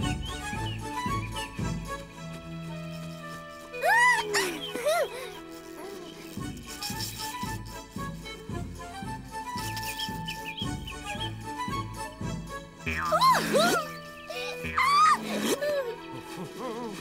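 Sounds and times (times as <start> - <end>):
playful background music: 0.0 - 17.0
squeaky cartoon voice squealing: 3.8 - 6.2, 13.0 - 15.6.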